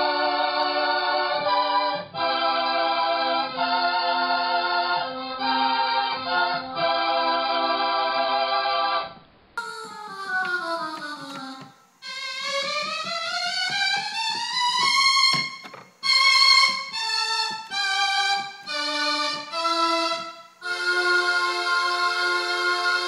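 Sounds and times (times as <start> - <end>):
tape keyboard held notes: 9.0 - 23.0.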